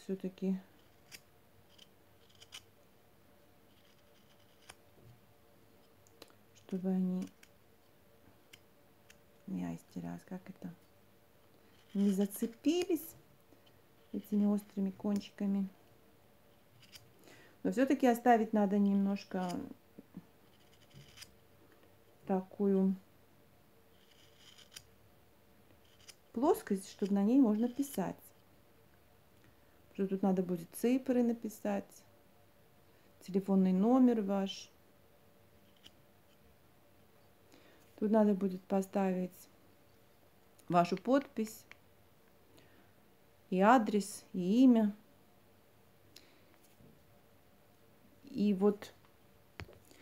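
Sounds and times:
knife scraping wood: 0.8 - 2.6, 3.7 - 4.8, 11.7 - 12.9, 20.5 - 21.3, 23.9 - 24.9, 25.8 - 26.2.

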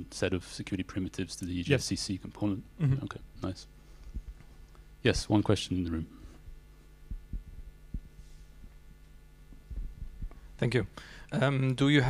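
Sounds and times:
steady low hum: 0.0 - 12.0
microphone handling thumps: 4.0 - 4.5, 6.4 - 8.9, 9.5 - 10.5.

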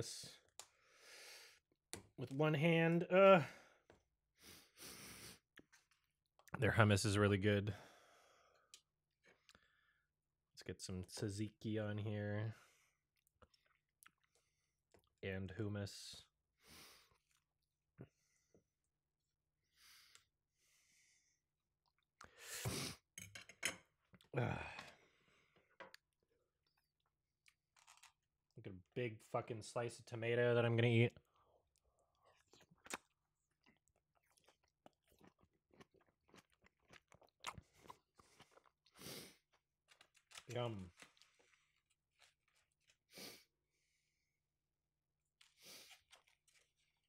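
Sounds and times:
close chewing with wet mouth sounds: 13.2 - 15.2, 31.6 - 43.0, 45.4 - 47.0.

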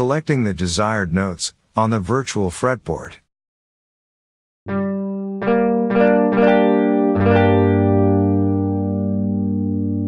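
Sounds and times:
guitar notes ringing as chord: 4.7 - 10.0.

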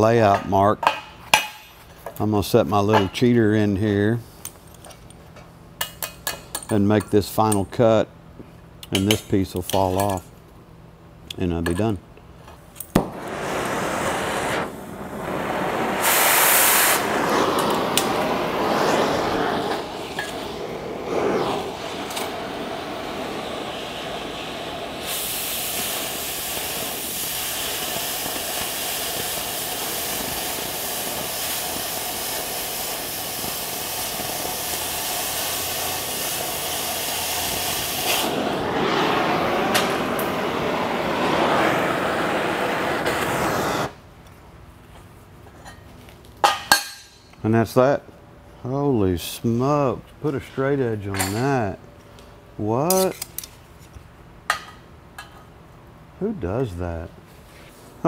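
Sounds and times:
cutting torch hissing: 13.0 - 44.0.

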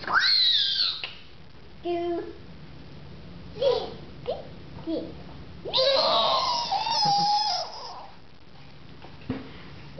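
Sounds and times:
child squealing: 0.0 - 1.1, 5.7 - 8.1.

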